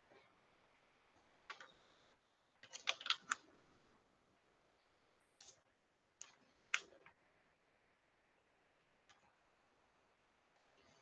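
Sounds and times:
computer keys clicking: 2.6s - 3.4s.

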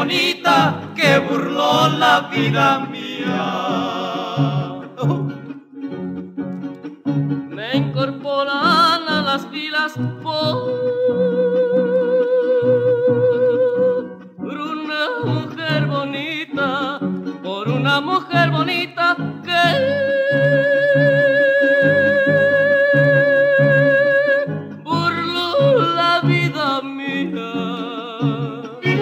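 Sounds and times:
falsetto singing with vibrato: 0.0s - 5.5s, 7.6s - 29.0s
plucked bass: 0.0s - 29.0s
strummed guitars: 0.0s - 29.0s
violins playing: 0.0s - 29.0s.

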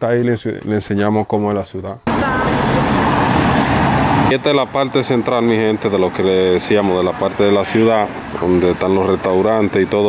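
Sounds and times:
van driving by: 2.1s - 8.8s.

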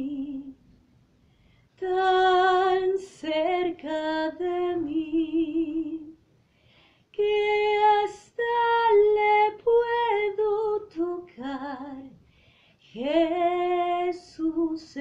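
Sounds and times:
woman singing unaccompanied: 0.0s - 0.6s, 1.8s - 6.2s, 7.1s - 12.2s, 12.8s - 15.0s.

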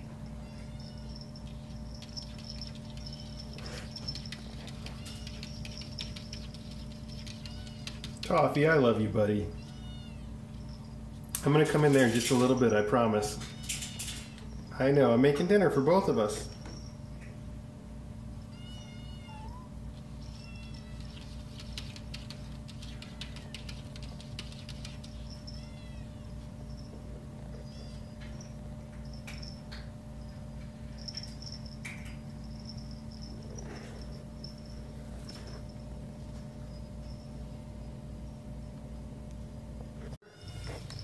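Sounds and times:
steady low hum: 0.0s - 41.0s
kittens mewing: 0.2s - 8.2s, 9.6s - 10.5s.

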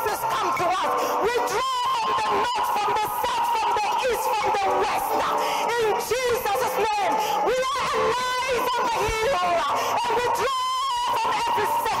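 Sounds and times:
woman wailing into a microphone: 0.0s - 12.0s.

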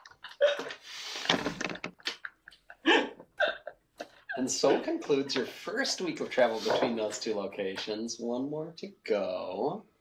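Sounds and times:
people laughing: 2.1s - 5.7s.

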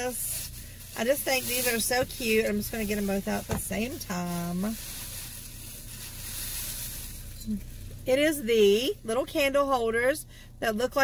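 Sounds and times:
plastic bag rustling: 0.0s - 8.0s.

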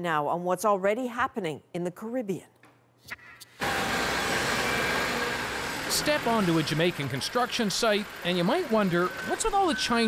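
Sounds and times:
wheel loader engine running: 3.6s - 10.0s.

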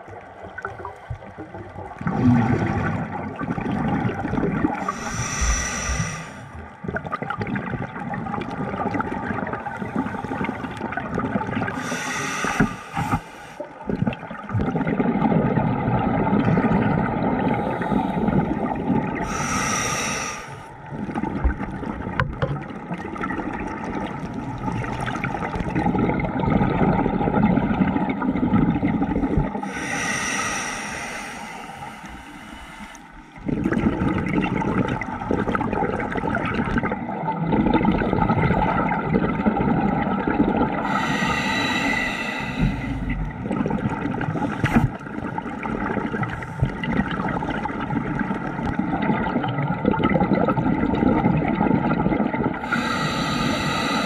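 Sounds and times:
exhaled air bubbling: 0.0s - 54.0s
regulator inhale hiss: 4.8s - 6.6s, 11.8s - 13.7s, 19.2s - 20.8s, 29.6s - 33.2s, 40.8s - 43.2s, 52.6s - 54.0s.

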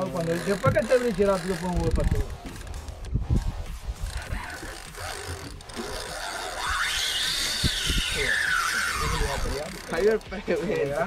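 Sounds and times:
fishing reel drag whining: 0.0s - 11.0s.

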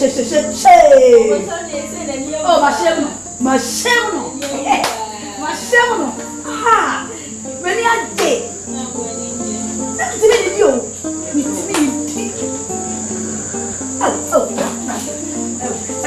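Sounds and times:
crickets trilling: 0.0s - 16.0s
music of held low notes: 0.0s - 16.0s.

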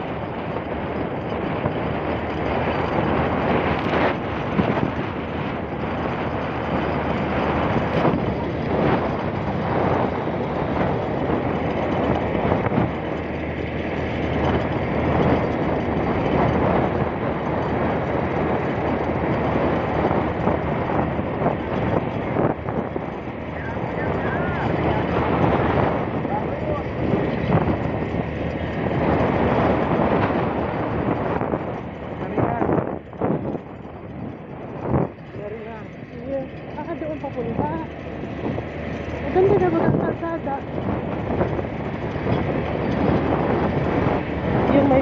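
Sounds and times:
motorcycle running: 0.0s - 45.0s
wind rushing over microphone: 0.0s - 45.0s.

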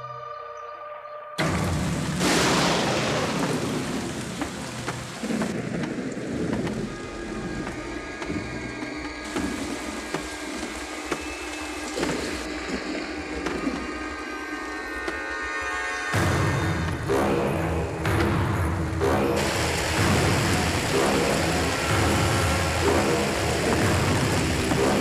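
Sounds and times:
low thunder rumbles: 1.4s - 10.0s
thunderclap: 1.4s - 11.2s, 19.4s - 25.0s
heavy rain: 1.4s - 25.0s.

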